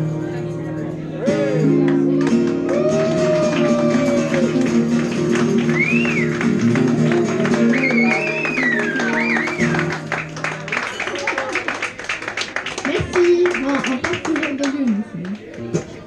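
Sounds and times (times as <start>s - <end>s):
guitars strumming chords: 0.0s - 10.7s.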